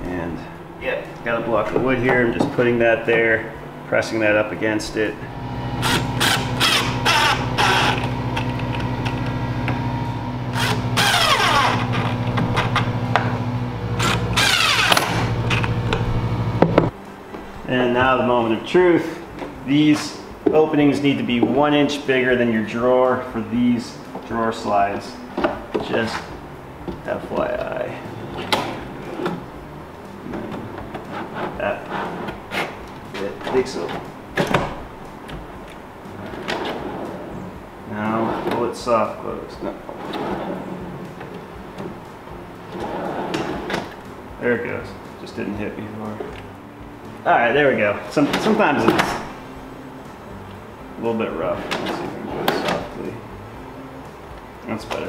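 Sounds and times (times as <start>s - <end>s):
drawer clicking on slides: 51.6s - 52.9s.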